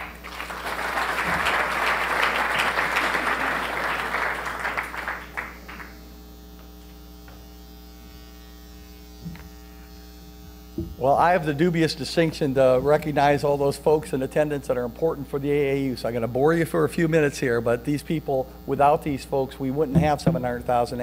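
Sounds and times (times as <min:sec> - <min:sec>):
audience applauding: 0:00.0 - 0:06.0
steady electrical hum: 0:00.0 - 0:21.0.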